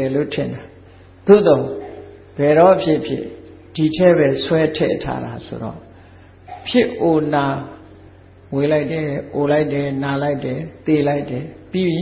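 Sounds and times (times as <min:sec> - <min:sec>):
man preaching in chant-like voice: 0:00.0 - 0:12.0.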